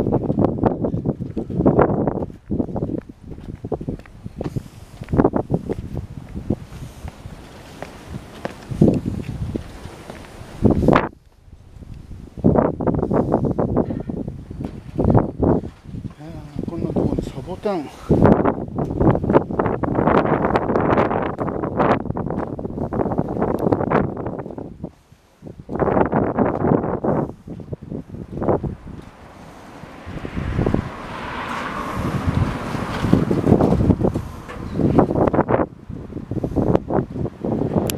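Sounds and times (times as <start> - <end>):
wind buffeting microphone: 0.0 - 37.9.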